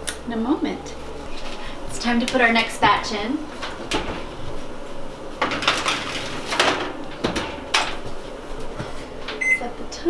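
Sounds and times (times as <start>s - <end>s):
metal baking tray clattering: 5.4s - 8.0s.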